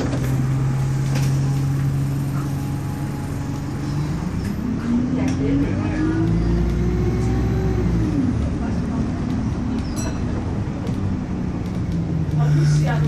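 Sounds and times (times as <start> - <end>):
bus engine and drivetrain whine: 0.0 - 13.0.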